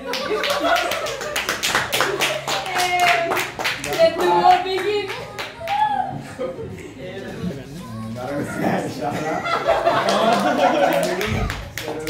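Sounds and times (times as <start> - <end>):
people clapping: 0.0 - 6.1, 9.7 - 12.0
people laughing and calling out: 5.6 - 11.6.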